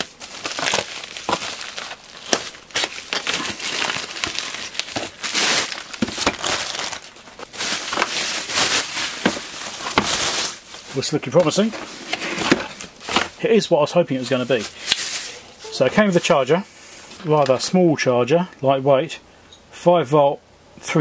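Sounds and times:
plastic bag tearing: 0.0s - 13.4s
plastic crinkling and crackling: 0.0s - 13.4s, 14.2s - 16.4s.

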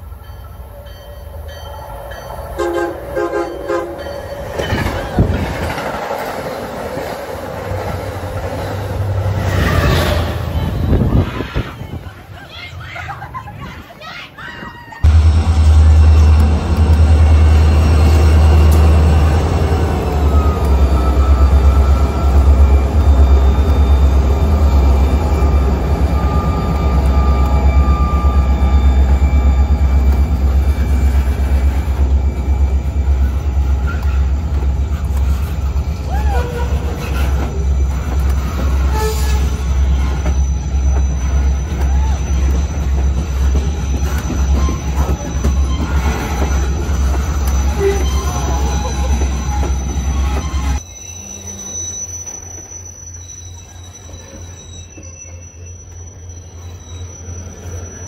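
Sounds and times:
diesel locomotive engine: 0.0s - 14.1s, 14.9s - 58.0s
high train wheel squeal: 0.0s - 58.0s
train cars rolling rumble: 0.0s - 58.0s.

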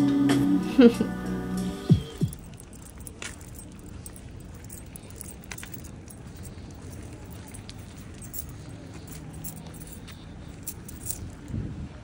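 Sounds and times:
low rumble of street traffic: 0.0s - 12.0s
keys jingling: 2.2s - 11.7s.

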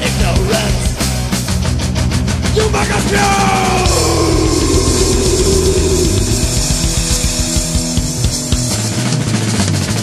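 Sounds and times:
instrumental heavy metal music: 0.0s - 10.0s.

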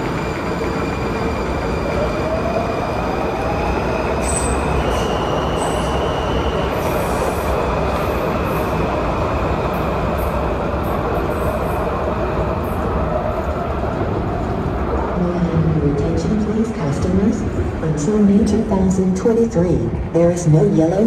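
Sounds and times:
subway train rumble: 0.0s - 21.0s.

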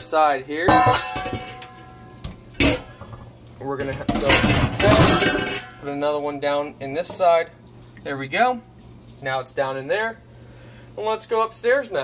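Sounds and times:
metal dishes clanking in sink: 0.6s - 5.9s.

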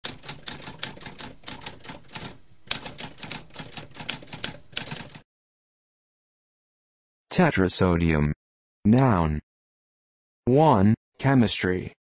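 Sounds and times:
typewriter keys typing: 0.0s - 5.2s.

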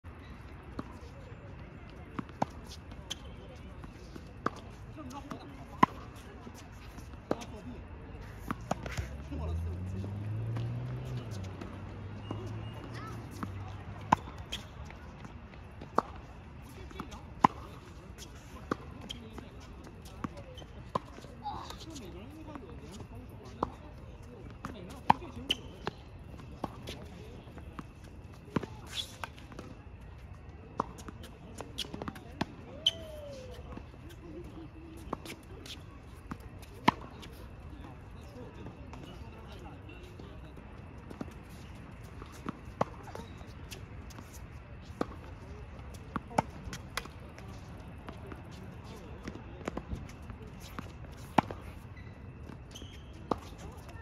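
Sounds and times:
tennis balls bouncing on court: 0.5s - 54.0s
tennis balls hit with rackets: 8.3s - 22.7s, 34.4s - 37.3s, 45.9s - 53.9s.

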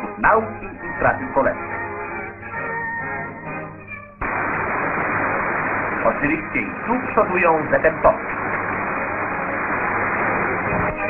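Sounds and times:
crowd applauding: 8.1s - 11.0s.

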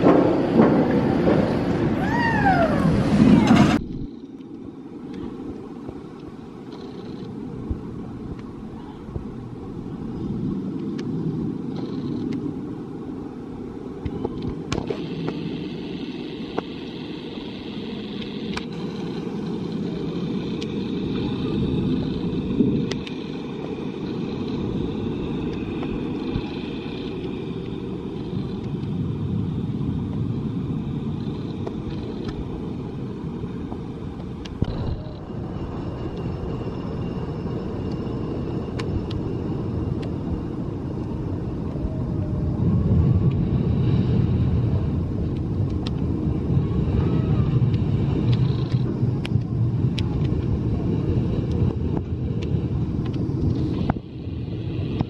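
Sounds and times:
roller coaster train rumbling: 0.0s - 55.0s.

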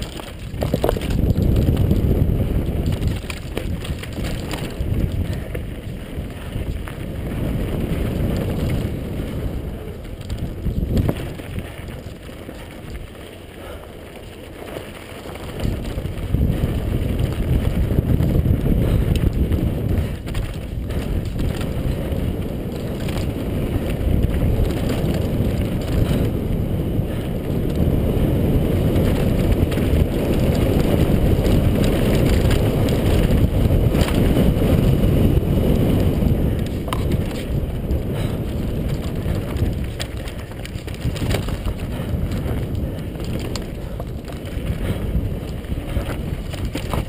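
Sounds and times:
bike rattling over bumps: 0.0s - 47.0s
tyres crunching over gravel: 0.0s - 47.0s
wind buffeting microphone: 0.0s - 47.0s.

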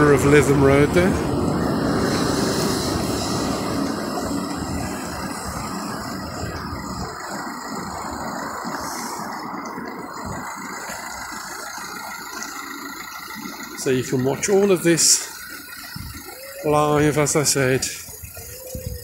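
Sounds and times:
traffic hum: 0.0s - 19.0s
vehicle passing: 0.0s - 19.0s.

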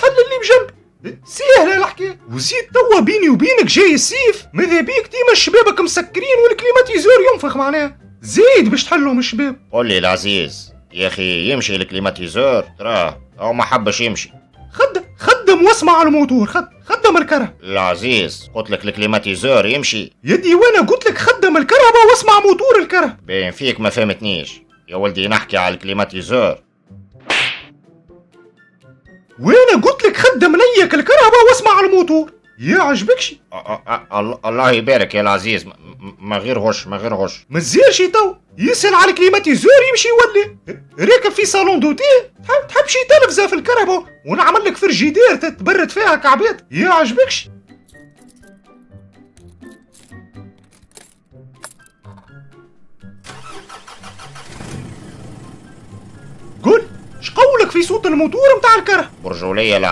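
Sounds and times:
faint background music: 0.0s - 59.9s
sharp swish: 27.2s - 27.8s
car engine starting and running: 53.1s - 57.4s.

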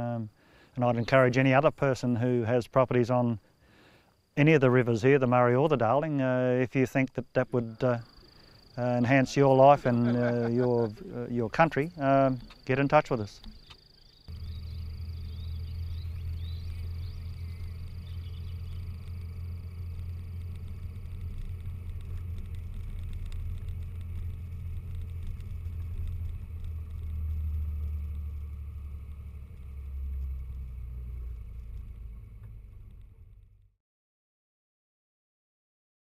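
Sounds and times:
off-road vehicle engine rumble: 4.4s - 33.7s.

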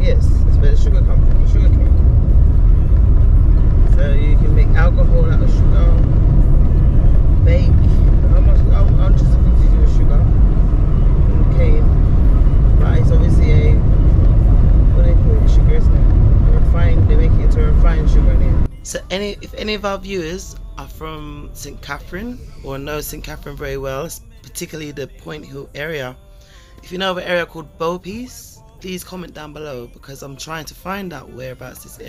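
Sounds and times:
car tyres and engine rumbling: 0.0s - 26.2s
indistinct passenger talk: 0.0s - 32.0s.

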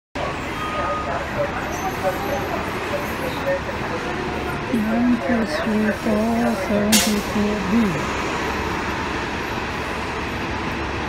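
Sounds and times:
faint voices: 0.2s - 8.2s
bus engine idling: 0.2s - 11.0s.

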